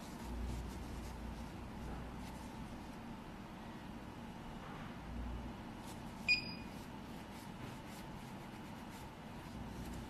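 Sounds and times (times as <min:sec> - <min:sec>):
faint room noise: 0:00.0 - 0:10.0
short electronic beep: 0:06.3 - 0:06.7.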